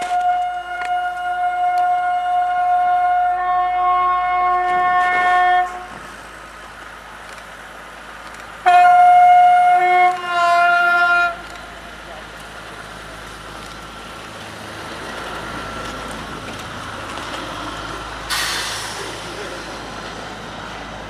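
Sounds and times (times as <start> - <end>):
locomotive horn blast: 0.0 - 6.0, 8.6 - 11.7
train running noise: 0.0 - 21.0.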